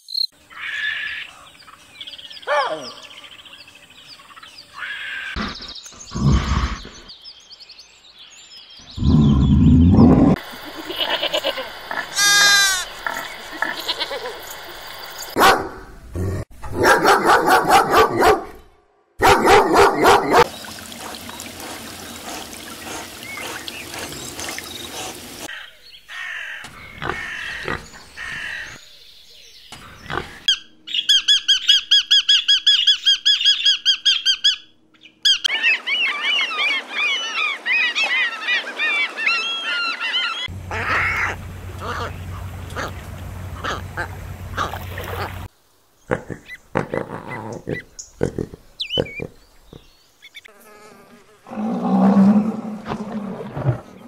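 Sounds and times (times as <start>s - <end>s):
birds chirping: 0.0s - 50.5s
pig grunting: 5.4s - 7.1s, 9.0s - 10.4s, 26.9s - 28.0s, 40.7s - 45.3s, 46.1s - 49.4s
animal sounds: 19.4s - 28.8s, 29.7s - 30.6s, 35.4s - 45.5s, 46.1s - 54.0s.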